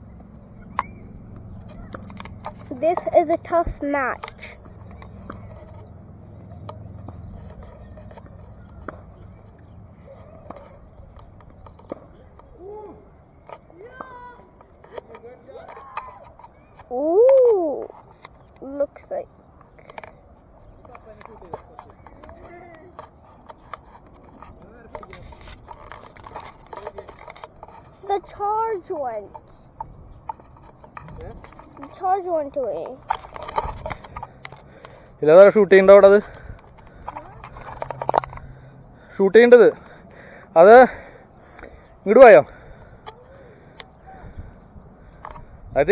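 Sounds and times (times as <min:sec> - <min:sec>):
tennis ball struck and bouncing: 0:06.5 - 0:09.5.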